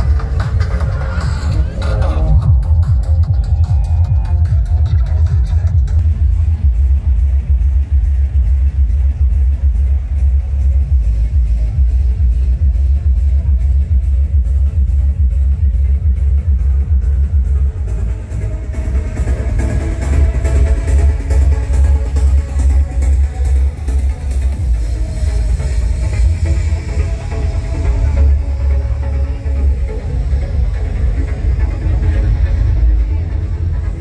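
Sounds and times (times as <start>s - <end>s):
loud electronic dance music: 0.0s - 34.0s.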